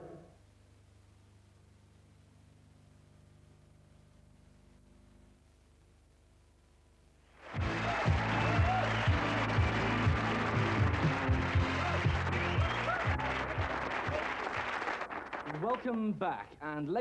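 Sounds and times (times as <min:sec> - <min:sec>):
audience applause and cheering: 0:07.4 - 0:16.0
music: 0:07.5 - 0:15.1.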